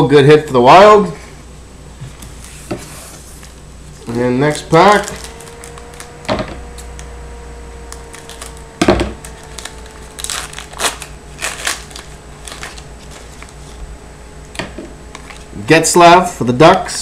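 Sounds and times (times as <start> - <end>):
faint steady hum: 0.0 - 17.0
wrapper crinkling and tearing: 3.4 - 7.2, 7.8 - 13.9.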